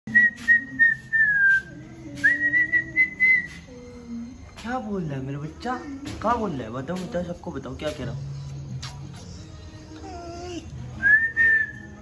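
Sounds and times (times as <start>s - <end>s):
person whistling at a dog: 0.1s - 3.8s, 11.0s - 12.0s.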